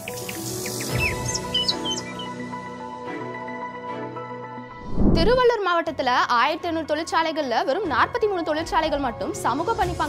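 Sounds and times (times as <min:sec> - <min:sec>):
rushing whoosh: 0:04.7 - 0:05.4.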